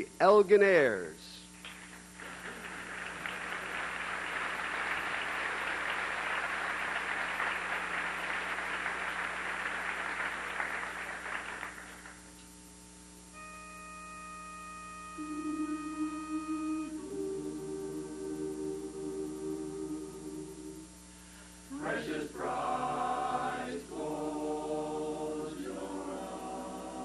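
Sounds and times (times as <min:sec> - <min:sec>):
chorus humming: 0:00.0 - 0:27.0
audience applause: 0:01.6 - 0:12.3
pitch pipe note: 0:13.3 - 0:20.8.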